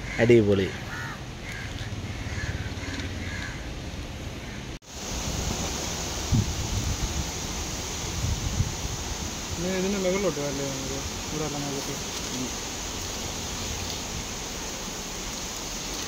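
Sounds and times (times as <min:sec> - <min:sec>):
crows cawing: 0:00.0 - 0:03.7
steady outdoor hiss: 0:00.0 - 0:16.0.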